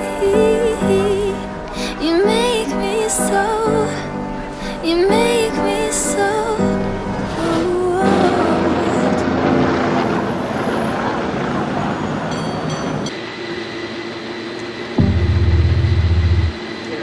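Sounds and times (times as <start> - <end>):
background music: 0.0 - 10.3
cable car running on rails: 0.0 - 15.0
traffic: 6.8 - 13.2
loud low rumble: 15.0 - 16.6.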